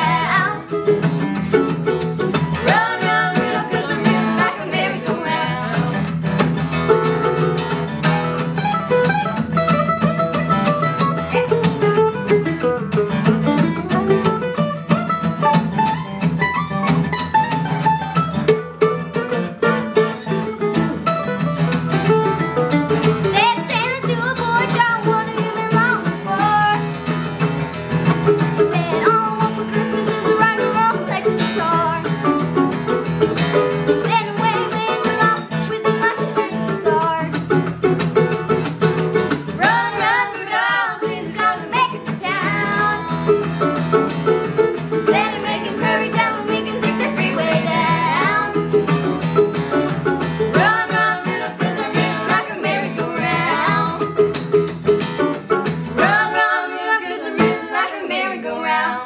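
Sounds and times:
girl singing: 0.0 - 1.2, 2.1 - 6.2, 23.2 - 27.0, 28.4 - 32.4, 33.8 - 37.6, 39.5 - 43.6, 44.9 - 49.1, 50.5 - 54.4, 56.0 - 59.0
acoustic guitar: 0.0 - 59.0
mandolin: 0.0 - 59.0.

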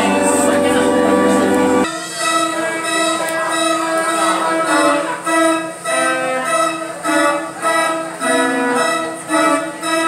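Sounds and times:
carousel band organ chords: 0.0 - 10.0.

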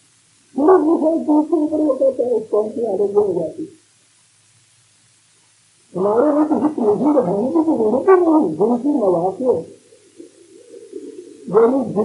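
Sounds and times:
faint low murmur: 0.0 - 12.0
man speaking: 6.0 - 9.8, 11.5 - 12.0.

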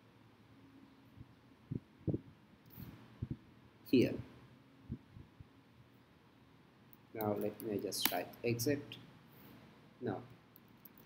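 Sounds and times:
soft low thumps: 1.2 - 2.3, 3.2 - 3.5.

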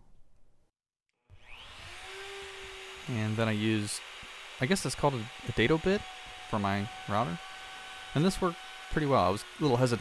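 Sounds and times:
electric router whining: 1.3 - 10.0.

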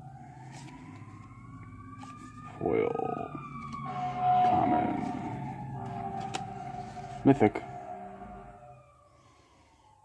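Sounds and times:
faint siren wail rising: 0.0 - 10.0.

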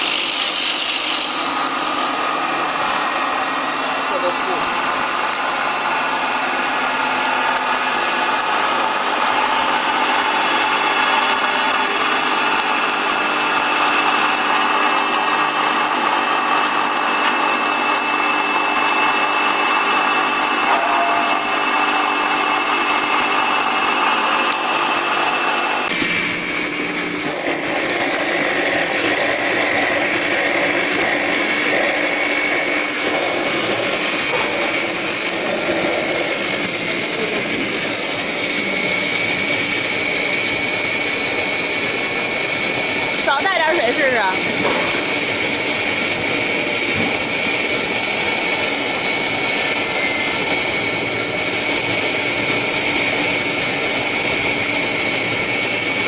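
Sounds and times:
electric grinding machine whine: 0.0 - 56.0
mill grinding paste under load: 0.0 - 56.0.

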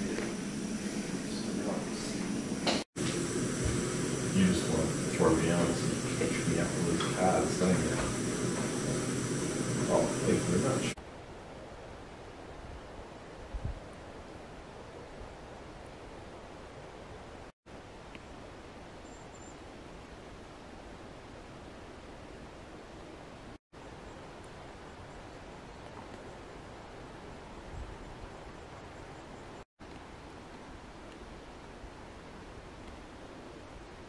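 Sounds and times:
gas stove hissing: 0.0 - 11.0
outdoor background hiss: 0.0 - 34.0
voices: 1.1 - 11.0.

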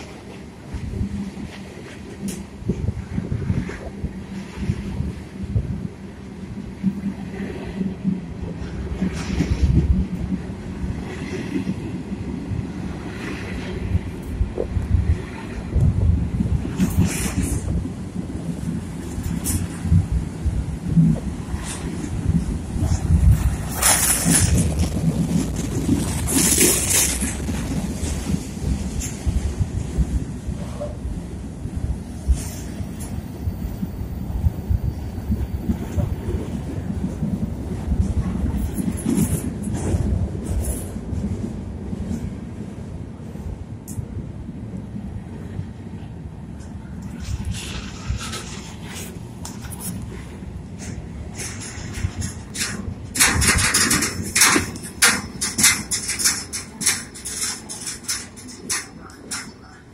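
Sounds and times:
train rumble and rail clatter: 0.0 - 59.9.

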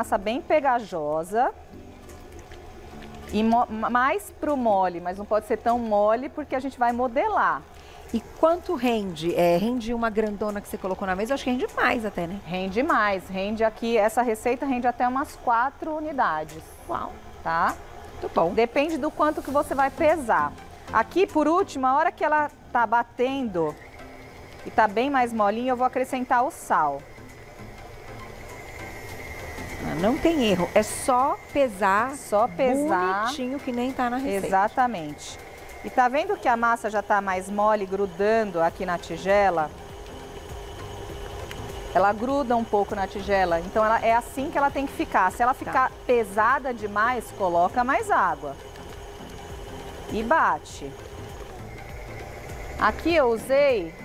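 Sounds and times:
stand mixer humming: 2.5 - 54.0
woman speaking: 3.3 - 23.8, 29.8 - 39.7, 42.0 - 48.6, 50.1 - 51.0, 52.8 - 54.0
stand mixer kneading dough: 33.1 - 54.0.

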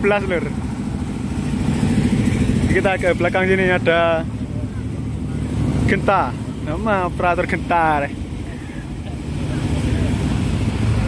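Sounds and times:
engines idling: 0.0 - 11.0.

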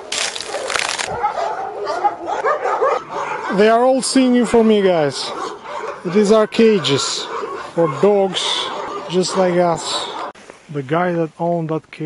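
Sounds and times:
dogs barking and yipping: 0.1 - 10.4.

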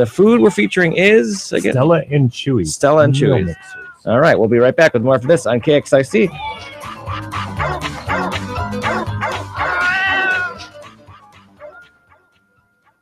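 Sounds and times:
music: 0.0 - 3.4, 4.0 - 13.0
dogs barking and yipping: 6.3 - 12.3.

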